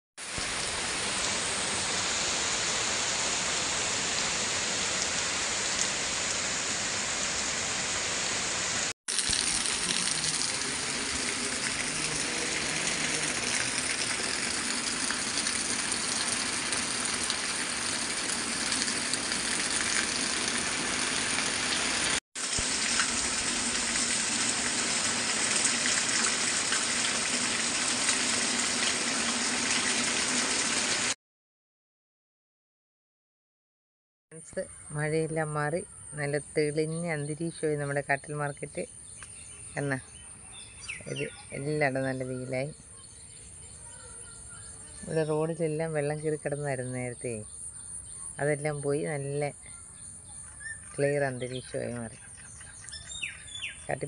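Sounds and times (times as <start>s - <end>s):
heavy rain on trees and water: 0.2s - 31.2s.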